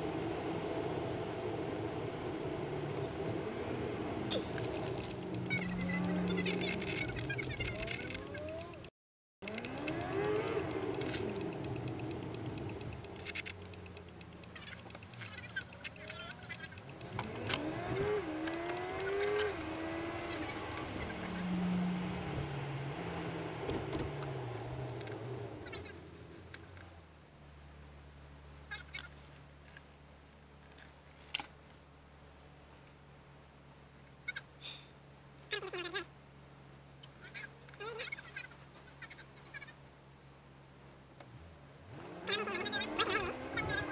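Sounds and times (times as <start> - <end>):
car engine inside car: 0.0 - 29.1, 35.1 - 43.9.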